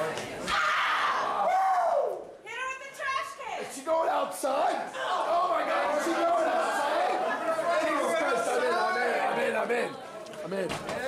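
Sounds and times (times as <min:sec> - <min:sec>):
voices shouting and talking: 0:00.0 - 0:11.0.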